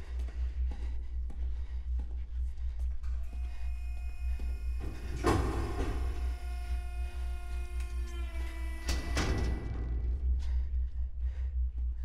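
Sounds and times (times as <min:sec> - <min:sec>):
low rumble: 0:06.0 - 0:12.0.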